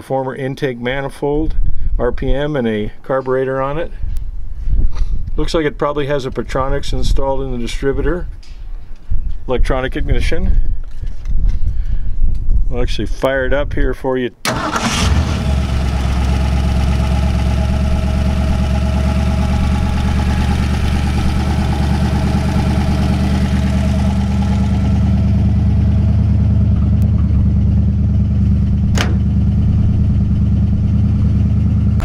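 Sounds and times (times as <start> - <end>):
car engine starting and idling: 14.4 - 32.0.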